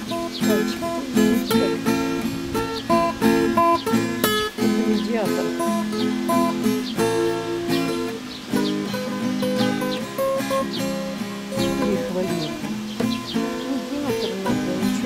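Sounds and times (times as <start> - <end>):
acoustic guitar picked slowly: 0.0 - 15.0.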